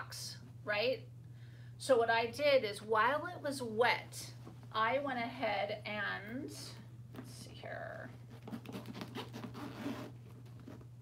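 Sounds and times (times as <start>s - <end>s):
bag rustling: 8.2s - 10.9s
zipper being pulled: 8.3s - 10.9s.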